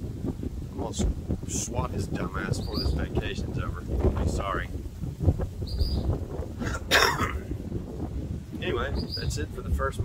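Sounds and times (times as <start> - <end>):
wind rumbling on microphone: 0.0 - 10.0
high bird chirp: 2.6 - 3.0, 5.6 - 6.1, 8.9 - 9.4.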